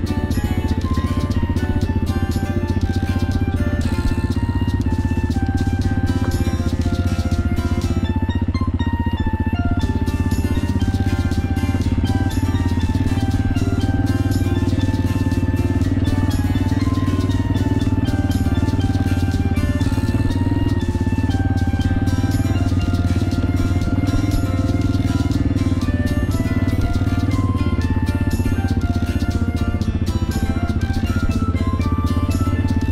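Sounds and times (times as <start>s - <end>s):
background music melody: 0.0s - 32.9s
motorcycle engine running: 0.0s - 32.9s.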